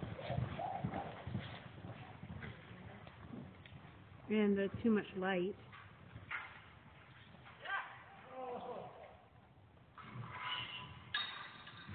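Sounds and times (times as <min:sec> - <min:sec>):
horse hoofbeats on dirt: 0:00.0 - 0:07.6.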